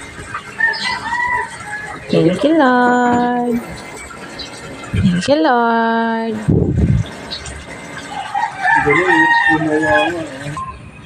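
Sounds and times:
rooster crowing: 0.6 - 2.1, 8.1 - 10.3.

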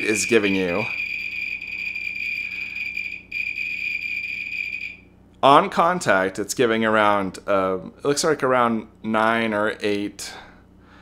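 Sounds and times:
high-pitched electronic beeper tone: 0.0 - 5.0.

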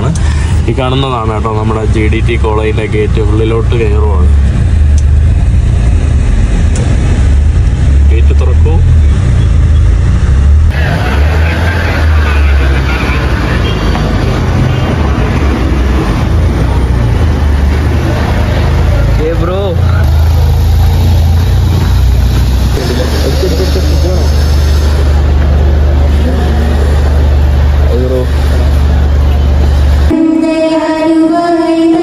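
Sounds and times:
vehicle rumble and rushing: 0.0 - 30.2
faint voices or tones: 10.7 - 17.1.

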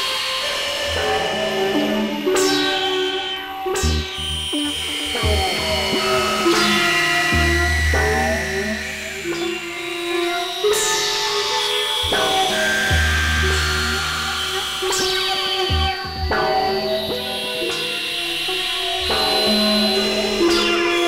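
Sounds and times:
sustained synthesizer tones: 0.0 - 21.0
deep bass drone: 3.9 - 9.6.

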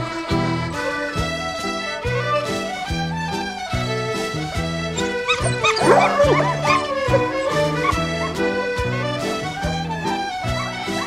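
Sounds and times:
hounds baying: 5.0 - 11.0.

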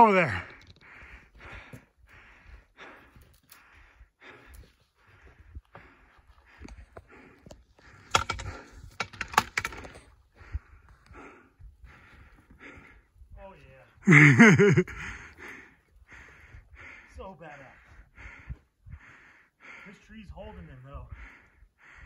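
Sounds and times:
fast heavy breathing: 0.2 - 22.0
stones clattering underfoot: 6.6 - 10.2.

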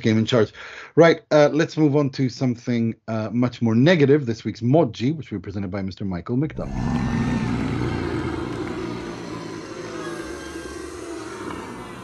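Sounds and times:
low rumbling noise: 6.5 - 12.0.

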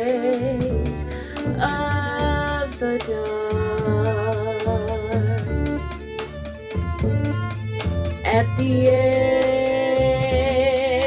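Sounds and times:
double bass notes: 0.0 - 11.0
even cymbal beat: 0.0 - 11.0
sustained violin line: 0.0 - 11.0.

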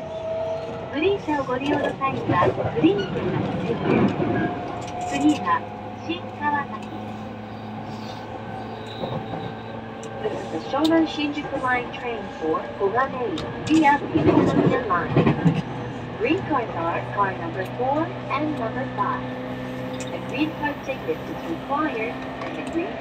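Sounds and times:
electric train running hum: 0.0 - 23.0
voices talking: 1.0 - 4.2, 5.0 - 8.2, 8.9 - 15.5, 20.0 - 23.0.

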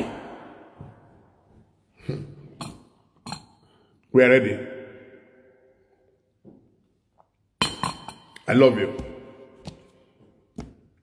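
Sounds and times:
ceramic mug clinking on table: 7.6 - 8.4.

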